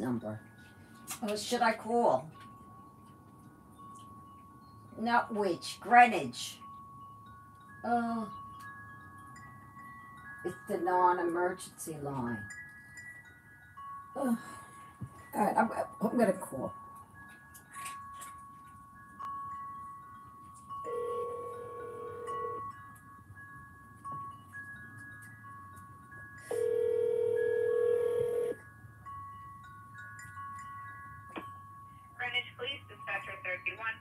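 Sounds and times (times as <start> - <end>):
faint chiming music: 0.0 - 34.0
telephone ringback tone: 20.8 - 22.7, 26.4 - 28.6.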